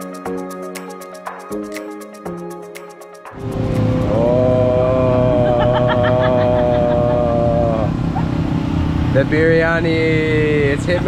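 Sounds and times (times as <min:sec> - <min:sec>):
person holding long sung note: 0:03.4 - 0:08.0
low traffic rumble: 0:03.4 - 0:11.0.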